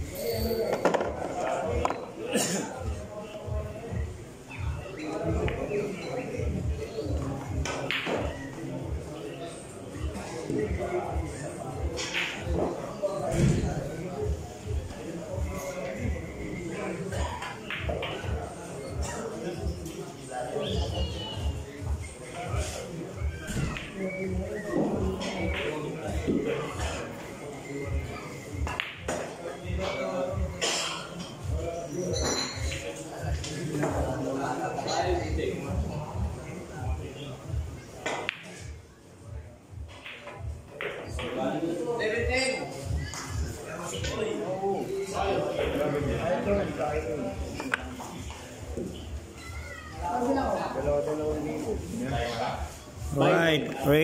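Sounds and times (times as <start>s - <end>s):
people talking: 0.0s - 39.0s, 40.0s - 54.0s.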